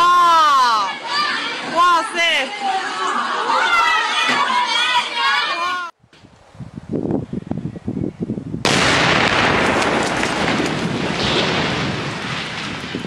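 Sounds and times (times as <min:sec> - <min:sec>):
structure collapsing with crash: 0:08.7 - 0:13.0
low knocks and crackles: 0:09.0 - 0:13.0.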